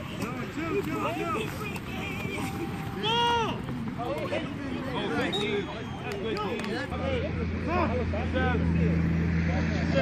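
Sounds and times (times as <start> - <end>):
people shouting: 0.0 - 6.4
loud drawn-out shout: 1.0 - 3.8.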